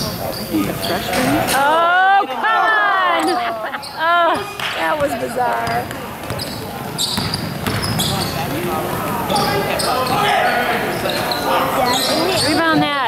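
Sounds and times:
sneakers squeaking: 0.0 - 1.8, 3.1 - 13.0
spectators' voices echoing: 0.0 - 13.0
basketball dribbling on hardwood: 7.1 - 8.0.

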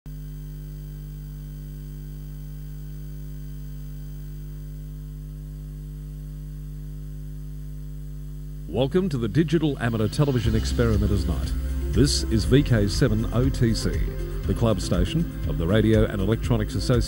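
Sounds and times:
electrical mains hum: 0.1 - 17.0.

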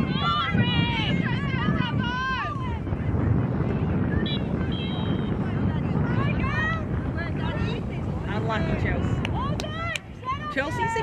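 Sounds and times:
players and spectators shouting: 0.0 - 3.0, 4.1 - 11.0
wind rumble on microphone: 0.0 - 11.0.

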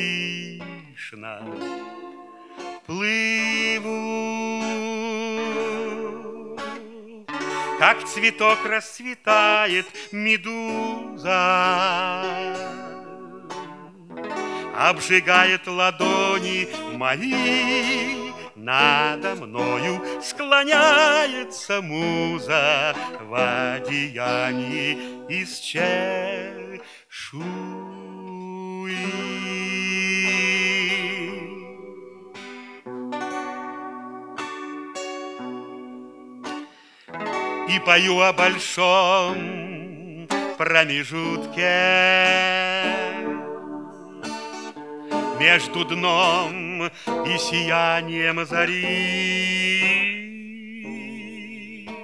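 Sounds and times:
man singing with vibrato: 0.0 - 33.9, 35.0 - 52.0
fingerpicked acoustic guitar: 0.0 - 52.0.

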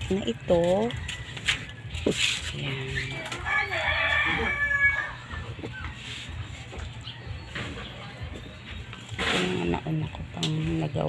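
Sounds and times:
rooster crowing: 3.2 - 5.5.

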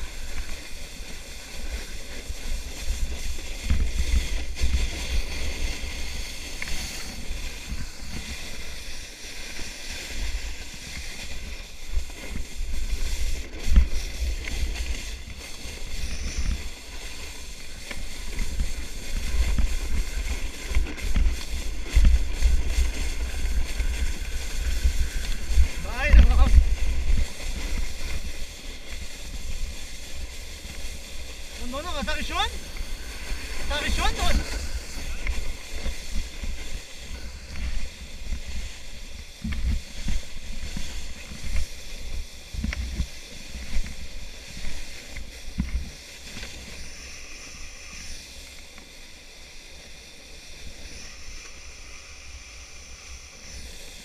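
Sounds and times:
plastic sled scraping over snow: 0.0 - 54.0
wind rushing over microphone: 0.0 - 54.0.

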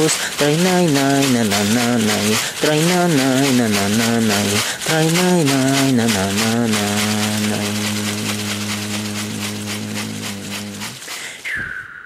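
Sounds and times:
man singing a long note: 0.0 - 10.9
rattle shaken rhythmically: 0.0 - 11.6.

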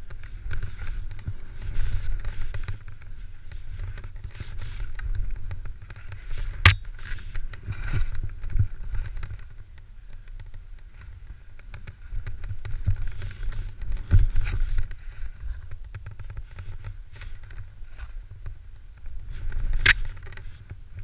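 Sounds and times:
wind rumble on microphone: 0.0 - 21.0.

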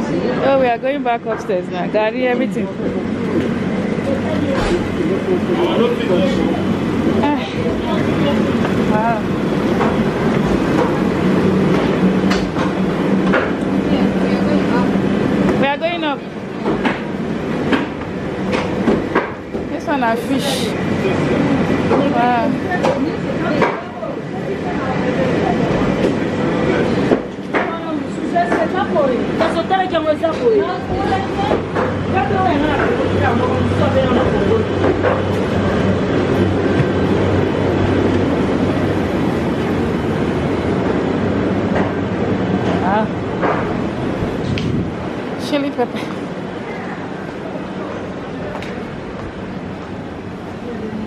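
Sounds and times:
steady rumble: 0.0 - 23.3, 28.8 - 51.0.

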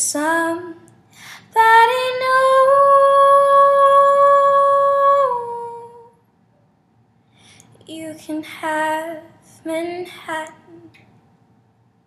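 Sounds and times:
woman singing a long note: 1.5 - 6.2.

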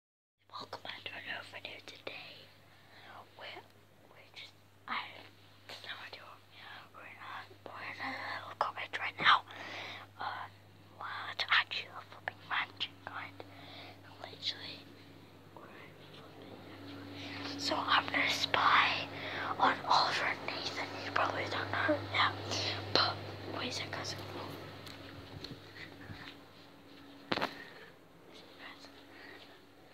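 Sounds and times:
steady low hum: 0.4 - 29.9
child whispering: 0.5 - 14.9, 15.6 - 24.6, 28.3 - 29.4.

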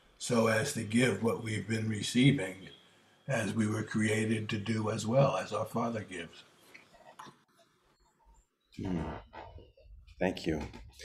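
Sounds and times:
man speaking: 0.2 - 6.4, 8.8 - 9.4, 10.1 - 11.0.

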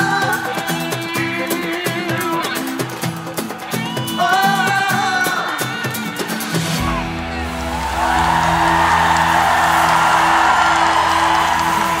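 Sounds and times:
crowd cheering: 6.5 - 12.0
live band sustained chord: 6.8 - 12.0.

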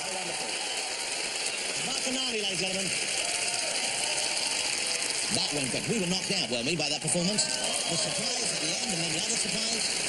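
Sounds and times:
audience applauding: 0.0 - 10.0.

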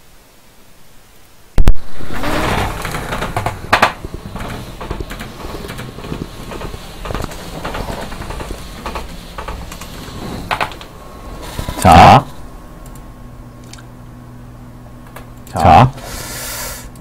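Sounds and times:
swivel chair knocks and rustling: 2.2 - 11.8.

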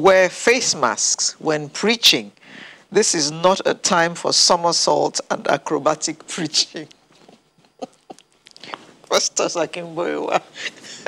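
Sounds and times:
people talking: 0.0 - 2.3, 3.0 - 6.9, 9.1 - 10.7
stifled chuckles: 7.6 - 8.5.

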